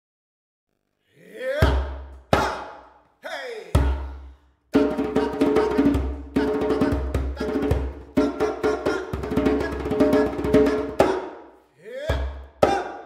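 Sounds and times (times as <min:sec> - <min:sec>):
person chanting held notes: 0:01.1 - 0:04.2, 0:05.1 - 0:11.2.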